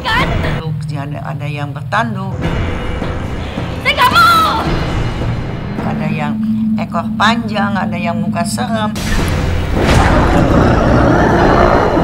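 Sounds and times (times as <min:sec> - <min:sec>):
sustained rumbling roar: 0:09.8 - 0:12.0.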